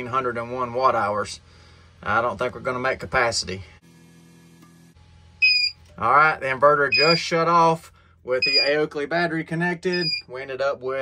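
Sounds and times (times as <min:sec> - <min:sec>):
power inverter humming: 0:00.0 - 0:10.9
high-pitched beep: 0:05.4 - 0:05.8, 0:06.9 - 0:07.2, 0:08.4 - 0:08.8, 0:09.9 - 0:10.2.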